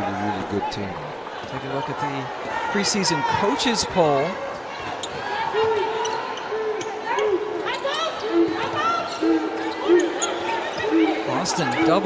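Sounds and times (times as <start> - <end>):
voices of players and crowd: 0.0 - 12.0
sneaker squeaks: 4.7 - 11.2.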